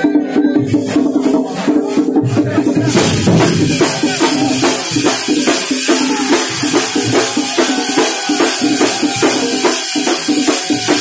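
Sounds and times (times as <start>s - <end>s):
large drums beaten with sticks: 0.6s - 11.0s.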